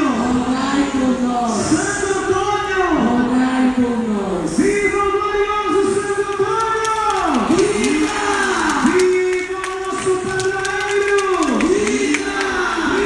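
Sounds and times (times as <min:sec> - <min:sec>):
hymn sung over loudspeakers: 0:00.0 - 0:13.0
large crowd noise: 0:00.0 - 0:13.0.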